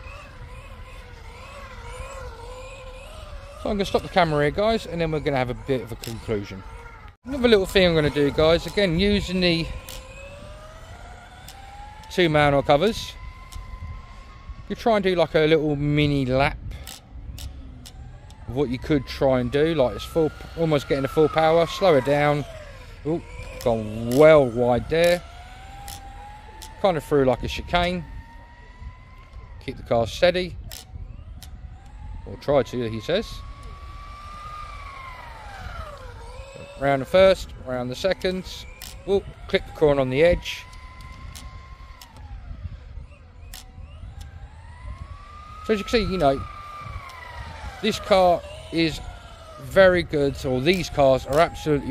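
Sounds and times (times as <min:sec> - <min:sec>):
electric motor whining: 0:00.0 - 0:51.9.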